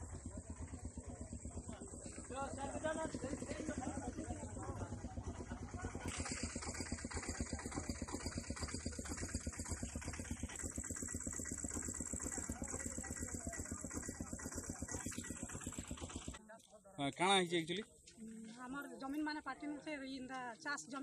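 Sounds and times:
engine idling: 0:00.0 - 0:16.4.

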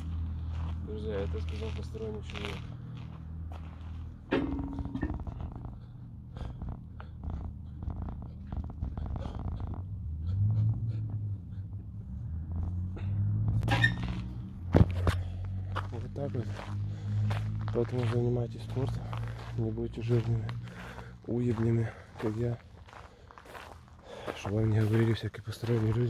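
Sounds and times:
footsteps crunching: 0:00.0 - 0:05.7, 0:13.9 - 0:26.0
steady low hum: 0:02.6 - 0:13.7.

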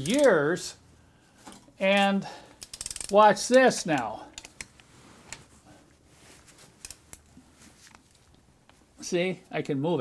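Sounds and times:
faint metal clicks of wrench: 0:00.0 - 0:00.4, 0:01.9 - 0:04.8.

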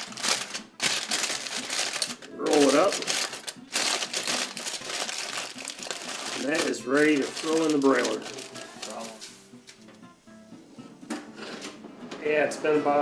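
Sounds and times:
aluminium foil crinkling: 0:00.0 - 0:09.4.

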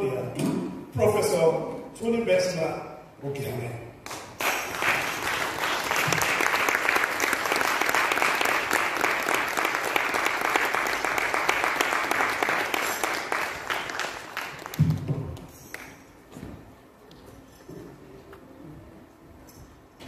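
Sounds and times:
audience applauding: 0:04.1 - 0:16.0.

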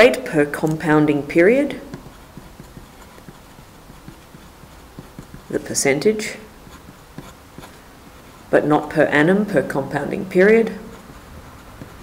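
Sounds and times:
pen writing on paper: 0:01.9 - 0:06.0, 0:06.6 - 0:07.8, 0:10.8 - 0:12.0.

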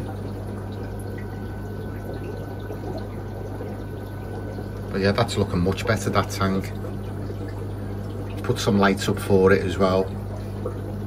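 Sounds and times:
water splashing and bubbling: 0:00.0 - 0:11.0.

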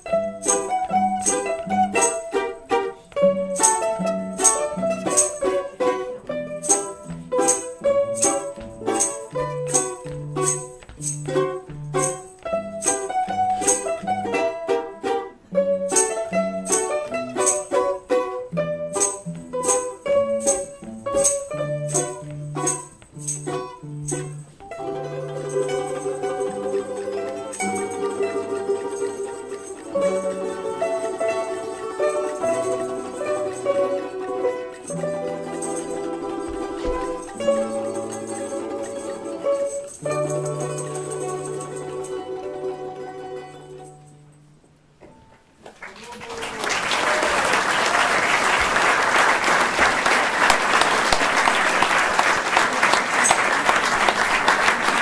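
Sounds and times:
plucked string ensemble: 0:00.0 - 0:45.7, 0:46.5 - 0:55.0.

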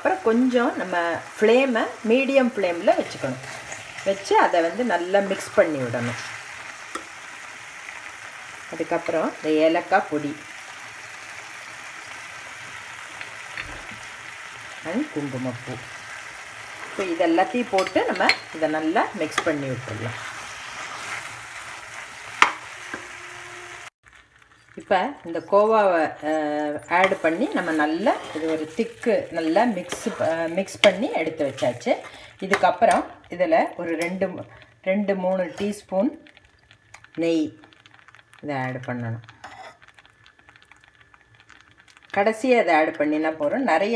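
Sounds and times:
food sizzling in a pan: 0:00.0 - 0:43.9
spoon stirring in a pan: 0:00.1 - 0:42.9
metal spatula scraping a pan: 0:02.8 - 0:04.4, 0:16.6 - 0:21.4, 0:26.0 - 0:33.1, 0:39.4 - 0:39.9
person speaking: 0:24.8 - 0:36.2.

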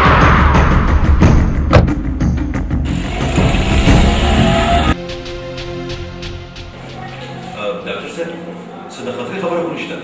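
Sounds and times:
car engine accelerating: 0:02.9 - 0:05.0.

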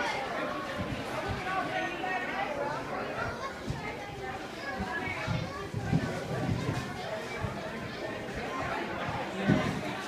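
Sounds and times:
children's voices: 0:00.0 - 0:10.0
people chattering: 0:00.0 - 0:10.0.

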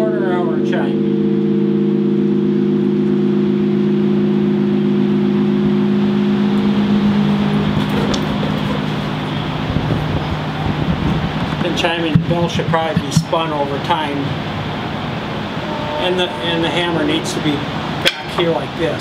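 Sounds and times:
steady rushing noise: 0:00.7 - 0:19.0
clock bell ringing: 0:15.6 - 0:17.8.

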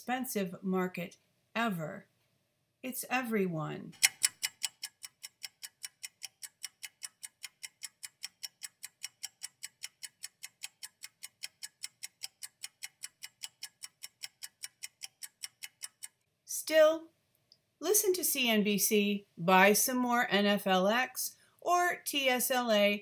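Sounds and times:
steady even ticking: 0:03.9 - 0:16.3.

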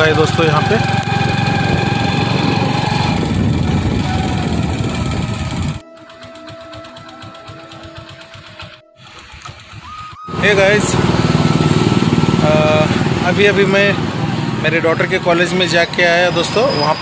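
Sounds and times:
small vehicle engine running: 0:00.0 - 0:17.0.

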